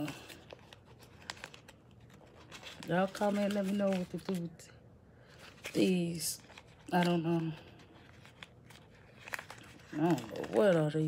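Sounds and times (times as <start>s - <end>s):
plastic package crinkling: 0.0s - 11.0s.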